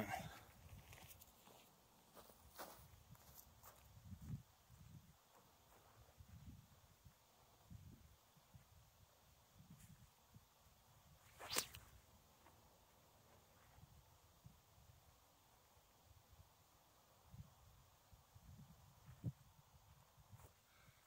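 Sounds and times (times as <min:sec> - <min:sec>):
footsteps on dry grass: 0:00.6 - 0:04.4.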